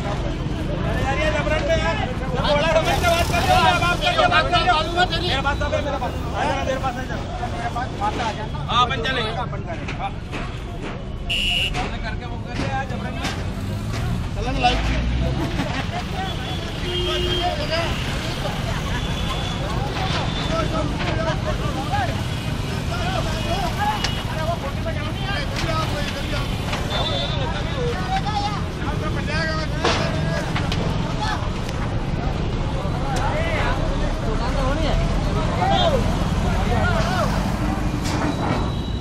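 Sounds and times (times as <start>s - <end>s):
people talking: 0.0s - 38.7s
road traffic rumble: 0.0s - 39.0s.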